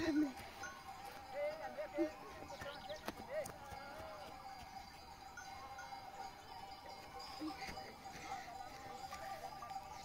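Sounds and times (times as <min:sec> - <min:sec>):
livestock bells tinkling: 0:00.0 - 0:10.0.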